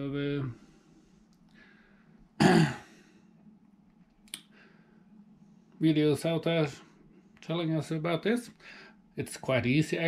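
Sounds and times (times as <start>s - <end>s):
man clearing his throat: 2.4s - 3.0s.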